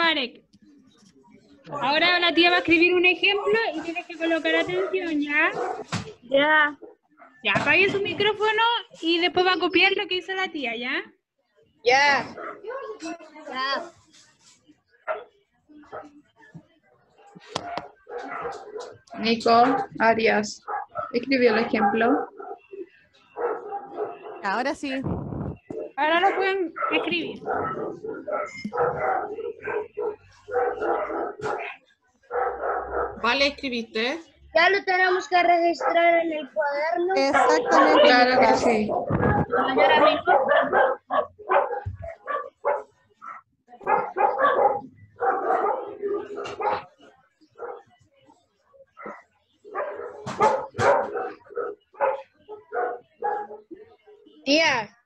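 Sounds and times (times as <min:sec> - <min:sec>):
dog barking: 0:03.3 - 0:06.0, 0:12.3 - 0:13.1, 0:15.0 - 0:16.2, 0:17.2 - 0:20.0, 0:20.6 - 0:24.6, 0:25.7 - 0:33.3, 0:35.8 - 0:36.2, 0:37.2 - 0:48.0, 0:48.9 - 0:54.4
children's voices: 0:34.6 - 0:40.5.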